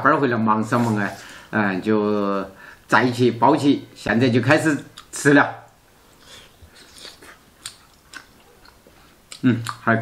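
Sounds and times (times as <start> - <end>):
people chewing dumplings: 6.1 - 9.9.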